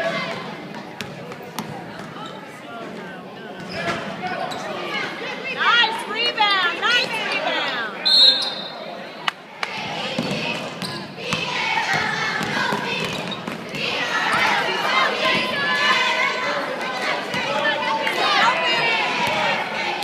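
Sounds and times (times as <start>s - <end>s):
echoing voices: 0.0s - 20.0s
sneakers squeaking: 0.8s - 2.6s, 3.6s - 4.9s, 8.1s - 8.9s, 10.1s - 15.6s
referee's whistle: 8.0s - 8.8s
basketball bouncing: 10.1s - 14.5s, 19.2s - 19.5s.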